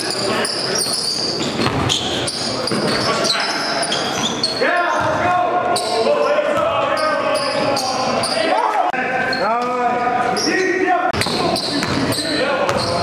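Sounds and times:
sneakers squeaking on gym floor: 0:00.0 - 0:08.6, 0:09.3 - 0:13.0
players' voices: 0:00.0 - 0:13.0
basketball bouncing: 0:01.6 - 0:02.0, 0:11.2 - 0:13.0.

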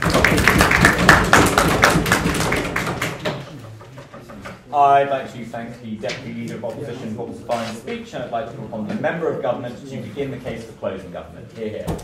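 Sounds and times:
audience applauding: 0:00.0 - 0:03.5.

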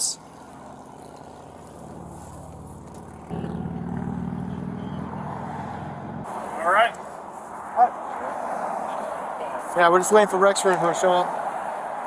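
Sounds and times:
vehicle engine idling: 0:00.0 - 0:07.9
road traffic noise: 0:00.0 - 0:12.0.

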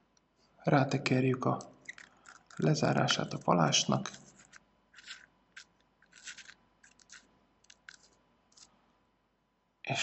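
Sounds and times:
metal threads rasping: 0:03.9 - 0:08.7.

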